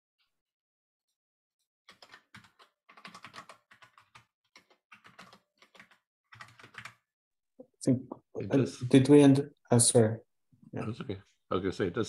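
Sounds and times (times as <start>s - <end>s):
typing on keyboard: 1.9s - 7.1s.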